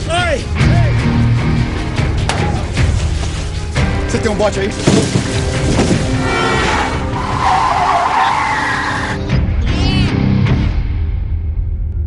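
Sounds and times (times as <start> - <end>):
car tyres squealing: 5.8 - 9.2.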